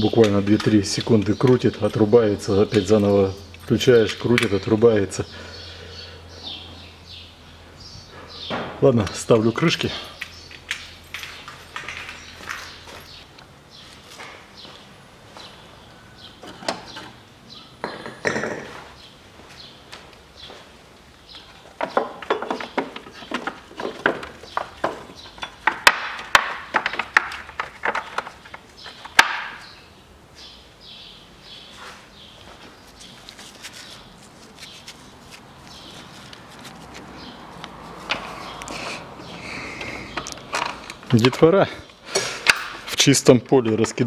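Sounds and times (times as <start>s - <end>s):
clatter of tools and parts: 21.6s - 29.3s.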